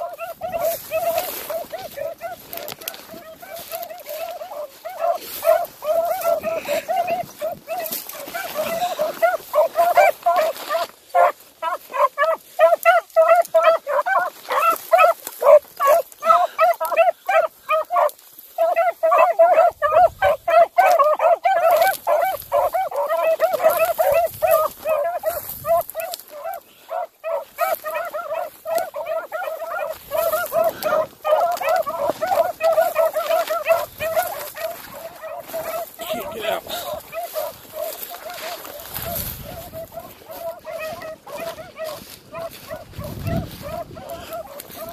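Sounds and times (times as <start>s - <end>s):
hounds baying: 0.0s - 44.9s.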